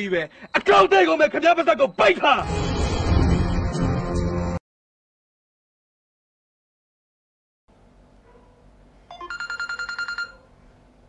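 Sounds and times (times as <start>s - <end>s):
phone dialing beeps: 9.1s - 10.4s.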